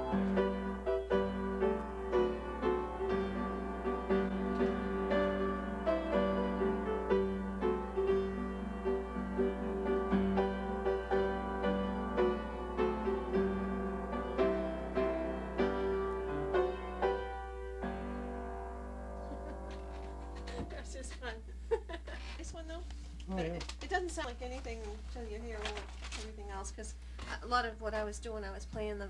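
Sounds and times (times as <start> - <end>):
piano accompaniment: 0.0 - 21.0.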